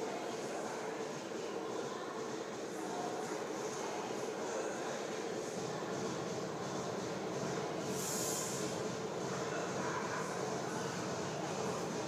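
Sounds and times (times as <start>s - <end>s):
gym hall background noise: 0.0s - 12.0s
brief hiss: 7.9s - 8.8s.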